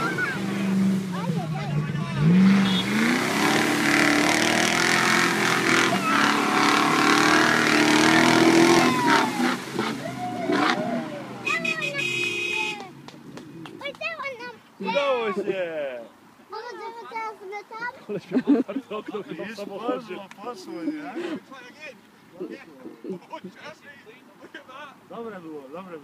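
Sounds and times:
off-road engines revving: 0.0s - 15.6s
people talking and shouting: 0.0s - 25.1s.

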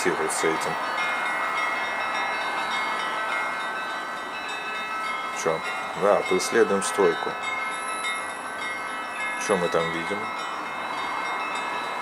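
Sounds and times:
church bells ringing: 0.0s - 12.0s
low hum of street traffic: 0.0s - 12.0s.

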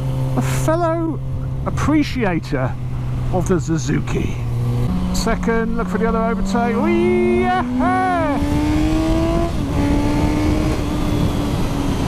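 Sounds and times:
motorcycle engine accelerating: 0.0s - 12.0s
wind on microphone: 7.6s - 12.0s.

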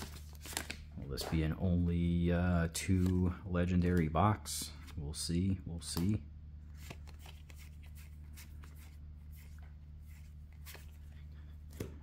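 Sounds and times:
steady low hum: 0.0s - 12.0s
cards sliding and clicking: 6.8s - 11.0s.

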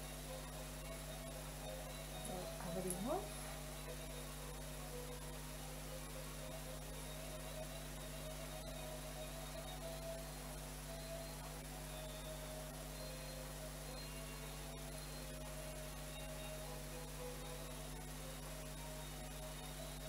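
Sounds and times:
electrical hum with hiss: 0.0s - 20.0s.

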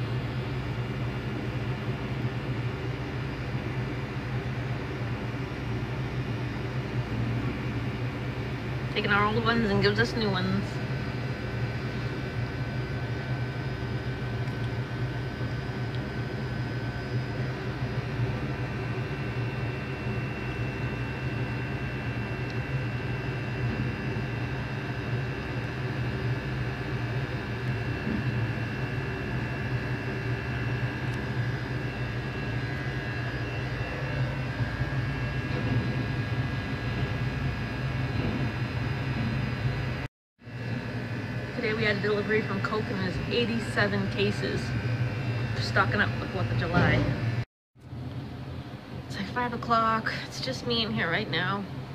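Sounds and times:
low mechanical hum: 0.0s - 51.9s.

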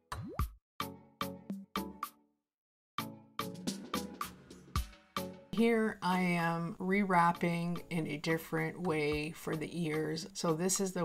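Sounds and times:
plucked notes background music: 3.0s - 11.0s.

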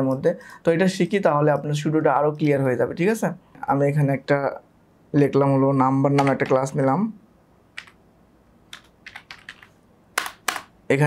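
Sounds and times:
keyboard keystrokes: 7.8s - 8.0s, 8.7s - 10.7s.

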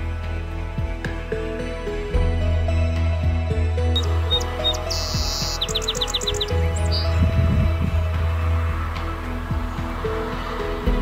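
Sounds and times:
soft background music: 0.0s - 11.0s
sparrow singing: 3.7s - 10.6s.

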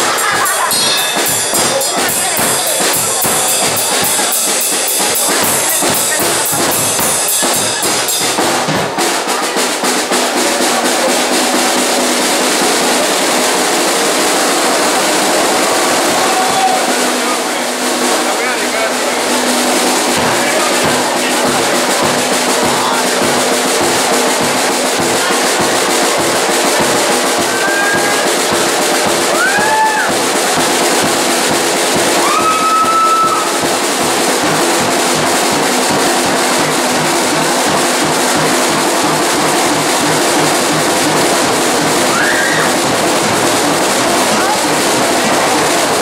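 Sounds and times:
cymbals washing: 0.0s - 46.0s
fast drum kit solo: 0.0s - 46.0s.

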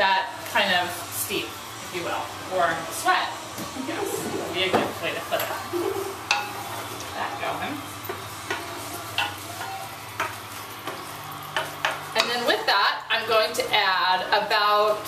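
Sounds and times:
garlic sizzling in oil: 0.0s - 15.0s.

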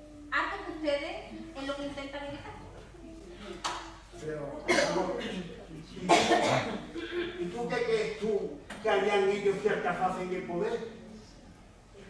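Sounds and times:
person coughing: 4.7s - 8.2s.

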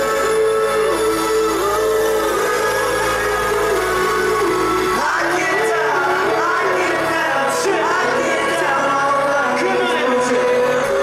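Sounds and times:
live pop band music: 0.0s - 11.0s.

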